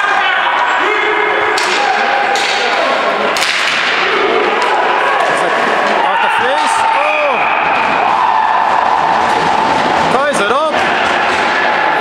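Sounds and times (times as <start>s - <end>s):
hockey stick striking cracks: 1.6s - 2.8s, 3.4s - 4.0s.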